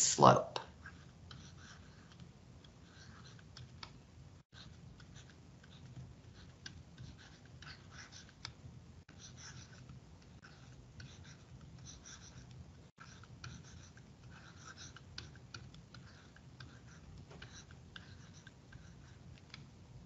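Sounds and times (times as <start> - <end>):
stylus scratching on tablet: 0.3 - 20.0.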